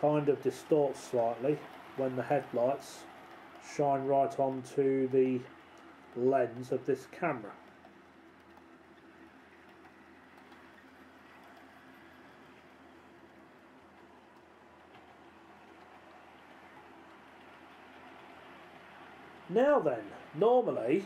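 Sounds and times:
model train wagons rolling hum: 0:00.0 - 0:21.0.

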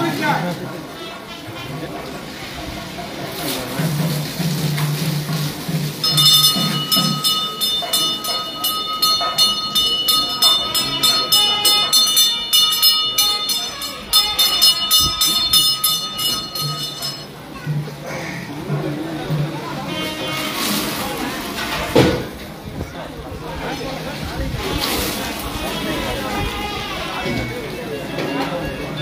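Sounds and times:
temple bell clanging rapidly: 0:03.7 - 0:17.9.

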